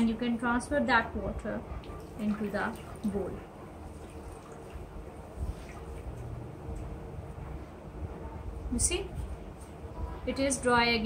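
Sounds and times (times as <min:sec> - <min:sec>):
water wrung into bowl: 0:01.9 - 0:06.9.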